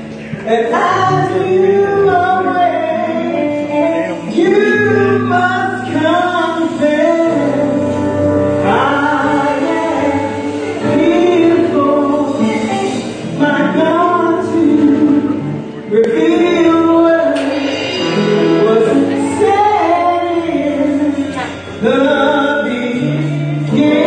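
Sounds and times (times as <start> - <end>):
church band playing: 0.0 - 24.0
woman singing gospel: 0.4 - 24.0.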